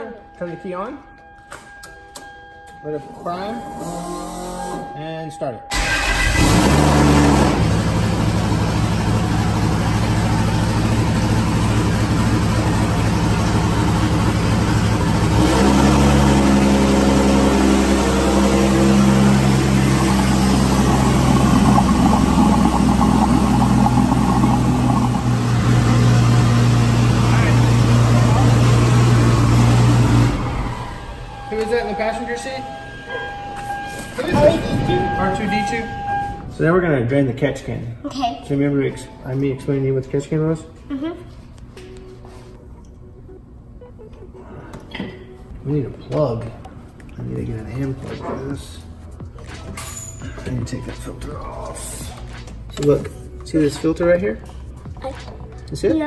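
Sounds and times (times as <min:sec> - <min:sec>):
race car engine idling: 0:05.8 - 0:32.2.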